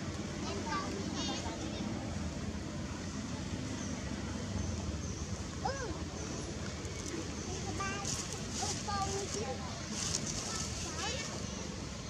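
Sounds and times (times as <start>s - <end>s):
people talking indistinctly: 5.6s - 11.7s.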